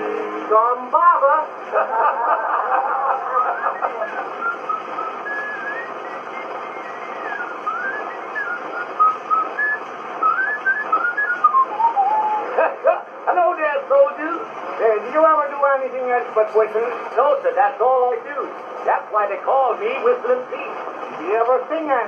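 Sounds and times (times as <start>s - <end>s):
record surface hiss: 0.0s - 22.0s
man talking: 0.4s - 1.6s, 12.4s - 22.0s
man whistling a tune: 3.5s - 12.4s.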